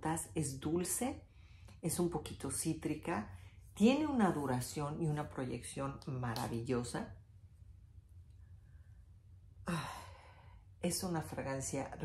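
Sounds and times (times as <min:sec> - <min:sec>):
woman speaking: 0:00.0 - 0:01.2, 0:01.8 - 0:07.2, 0:10.8 - 0:12.0
woman sighing: 0:09.6 - 0:10.5.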